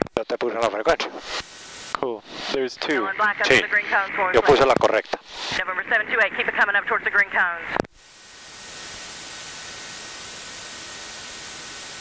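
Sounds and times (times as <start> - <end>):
radio static hiss: 0.0 - 12.0.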